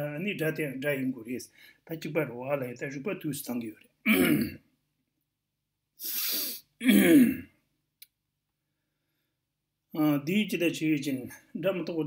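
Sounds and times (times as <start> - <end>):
man clearing throat: 4.1 - 4.6, 6.8 - 7.6.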